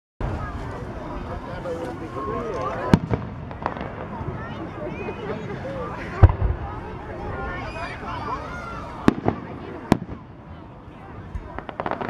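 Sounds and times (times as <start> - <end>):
crackling fireworks pops: 1.7 - 4.4, 6.2 - 6.8, 9.0 - 10.4, 11.2 - 12.0
fireworks bangs: 2.8 - 4.6, 6.1 - 7.4, 9.0 - 12.0.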